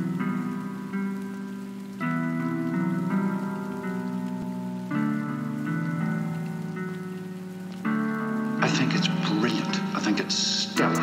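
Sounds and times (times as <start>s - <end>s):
rain falling: 0.0s - 11.0s
sustained keyboard chords: 0.0s - 11.0s.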